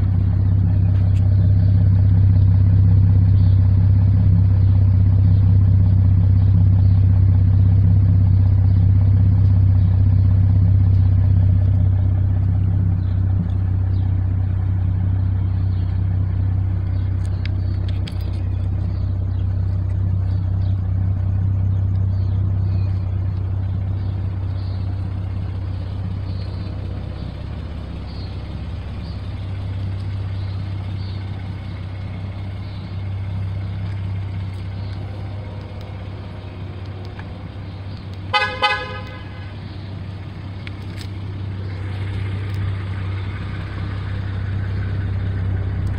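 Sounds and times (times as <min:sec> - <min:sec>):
car engine idling: 0:00.0 - 0:45.9.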